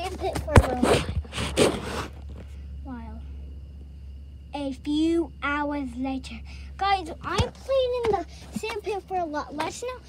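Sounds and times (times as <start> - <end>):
steady low rumble: 0.0 - 10.0
microphone rubbing against clothing: 0.4 - 2.4.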